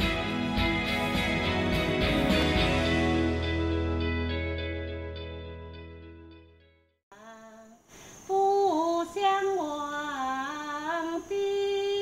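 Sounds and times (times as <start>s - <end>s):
elderly woman singing alone: 7.1s - 12.0s.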